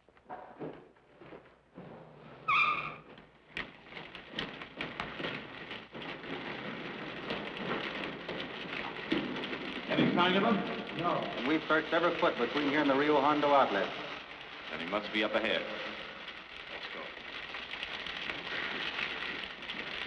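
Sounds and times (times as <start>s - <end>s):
scuffs and knocks of climbing: 0.0s - 20.0s
water running in tunnel: 4.3s - 20.0s.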